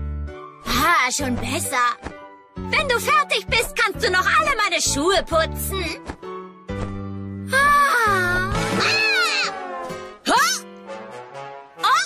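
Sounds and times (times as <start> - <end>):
background music: 0.0 - 12.0
girl's cartoon wail: 7.5 - 10.6.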